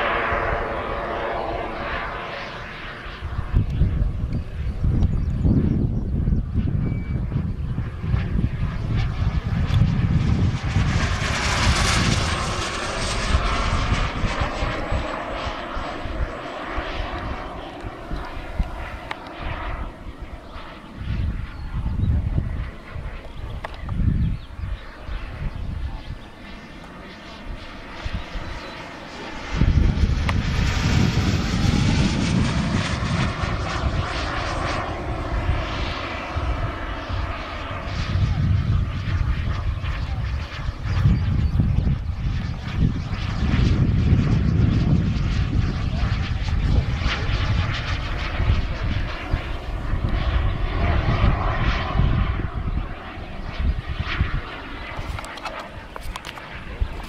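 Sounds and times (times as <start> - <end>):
model jet turbine whine: 0.0 - 57.0.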